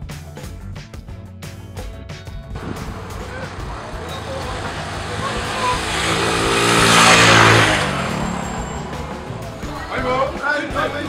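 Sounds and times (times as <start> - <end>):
vehicle driving past: 2.6 - 11.0.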